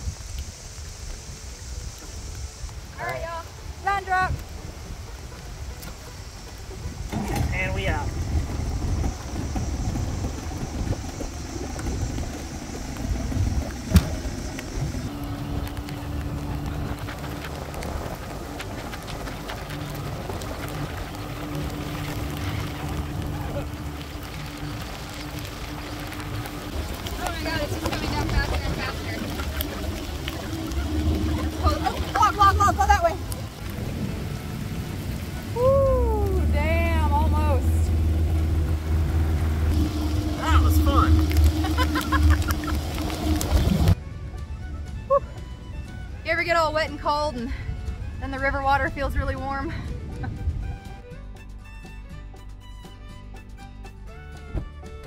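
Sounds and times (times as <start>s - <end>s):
rain falling: 0.0s - 50.4s
wind buffeting microphone: 0.0s - 51.2s
outboard motor running: 0.0s - 55.0s.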